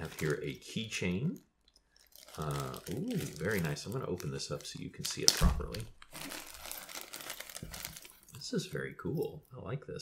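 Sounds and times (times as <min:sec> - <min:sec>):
plastic packaging crinkling: 0:00.0 - 0:08.8.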